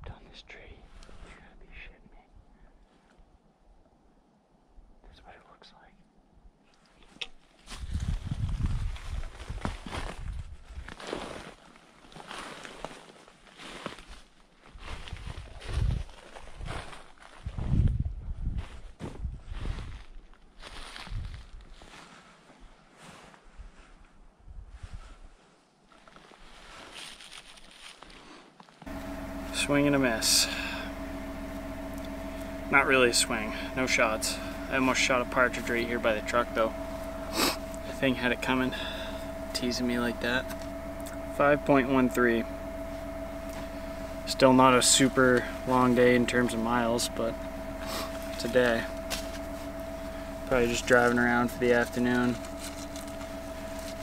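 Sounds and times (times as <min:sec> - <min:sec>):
footsteps crunching through snow: 0:07.6 - 0:17.8, 0:18.6 - 0:23.4, 0:26.0 - 0:28.8, 0:43.0 - 0:54.0
brush and clothing rustling: 0:18.8 - 0:24.0, 0:24.9 - 0:28.8.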